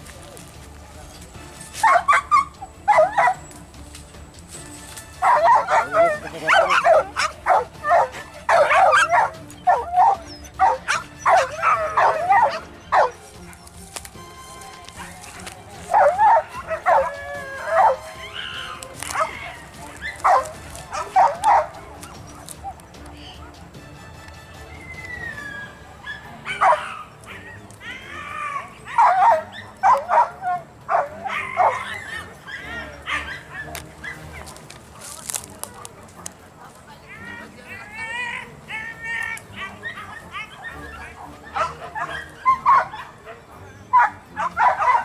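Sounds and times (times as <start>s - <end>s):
dogs yelping and barking: 1.1s - 3.9s, 4.7s - 23.7s, 24.6s - 45.0s.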